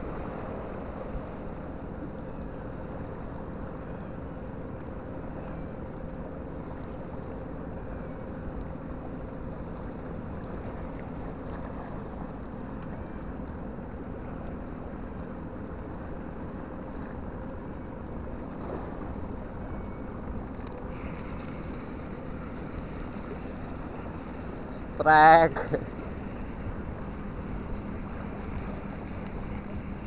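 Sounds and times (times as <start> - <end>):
faint steady hum: 0.0 - 30.0
low outdoor rumble: 0.0 - 30.0.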